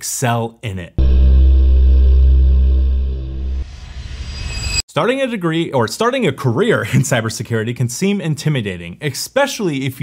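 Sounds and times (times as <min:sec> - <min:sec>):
deep bass drone: 0:01.0 - 0:04.8.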